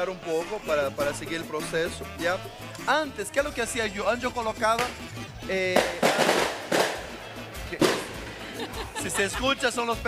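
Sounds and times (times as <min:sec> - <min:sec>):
firecrackers banging: 0:05.7 - 0:09.2.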